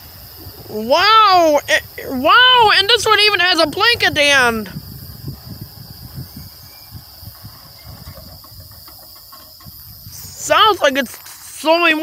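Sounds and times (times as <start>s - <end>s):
high insect buzz: 0.0s - 12.0s
train rumble with wheel knocks: 2.8s - 10.0s.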